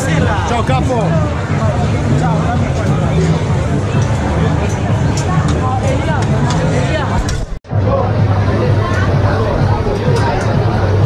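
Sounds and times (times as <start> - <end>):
voices and chatter: 0.0 - 11.0.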